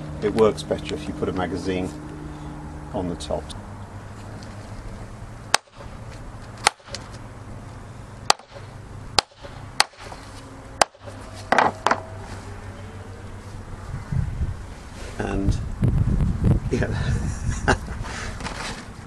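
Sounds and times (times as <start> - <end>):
hammer striking hole punch: 8.3 - 10.2, 10.8 - 12.0
brief rustle: 18.1 - 19.0.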